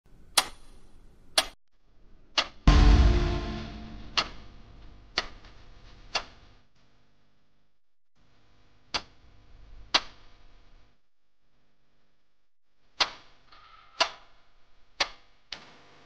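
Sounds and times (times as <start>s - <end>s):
deep boom with ringing chord: 2.7s - 4.7s.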